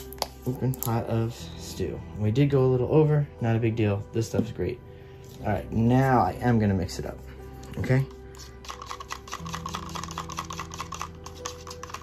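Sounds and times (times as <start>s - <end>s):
stick stirring paint in plastic cup: 6.9s - 12.0s.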